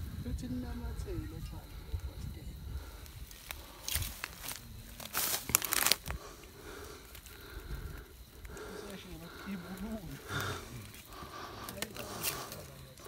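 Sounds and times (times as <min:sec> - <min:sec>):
dry leaves rustling and crackling: 0:03.3 - 0:06.3.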